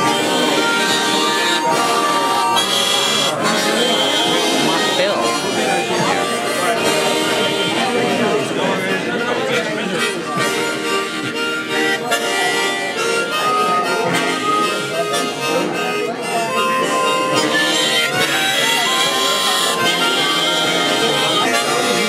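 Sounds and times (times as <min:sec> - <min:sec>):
harmonicas playing chords: 0:00.0 - 0:22.0.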